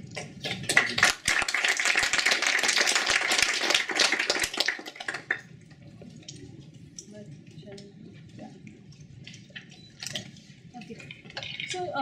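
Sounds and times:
audience applauding: 0.6s - 5.4s.

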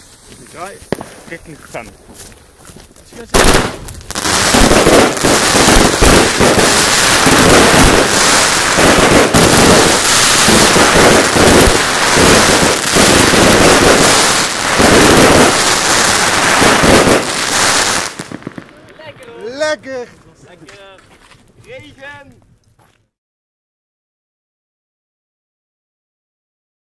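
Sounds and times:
firework crackling: 0.0s - 22.6s.

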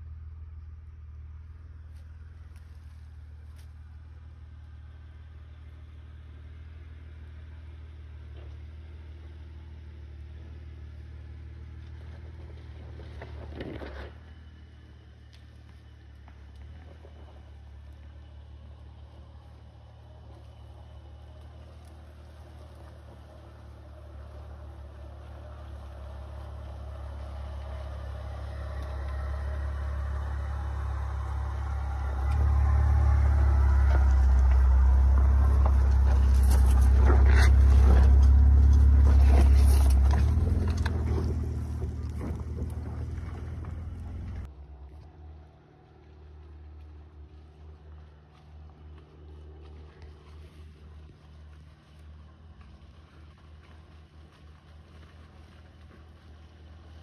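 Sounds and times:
truck engine at low speed: 0.0s - 57.0s.

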